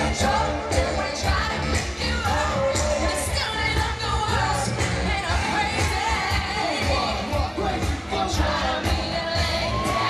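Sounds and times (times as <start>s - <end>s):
heavy bass beat: 0.0s - 10.0s.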